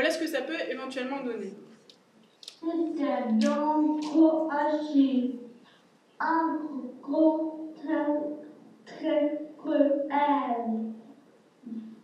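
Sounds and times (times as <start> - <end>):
person chanting rhythmic rhyme: 2.6 - 5.5.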